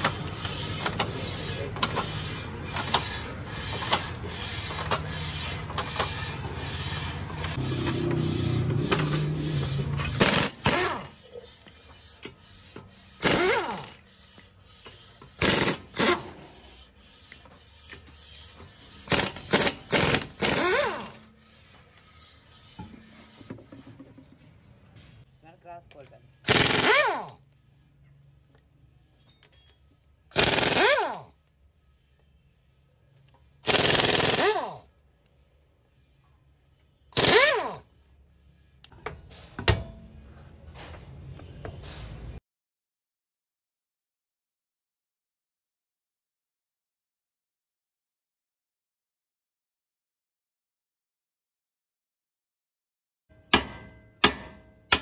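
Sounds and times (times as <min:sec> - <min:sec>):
impact wrench spinning: 0:03.8 - 0:11.2, 0:12.9 - 0:14.4, 0:15.4 - 0:16.5, 0:19.0 - 0:21.2, 0:26.5 - 0:27.4, 0:30.3 - 0:31.3, 0:33.6 - 0:34.8, 0:37.2 - 0:37.8.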